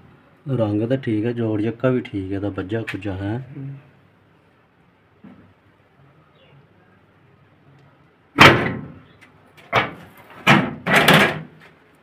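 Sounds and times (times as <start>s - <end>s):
loud sudden thumps: 8.4s - 9.0s.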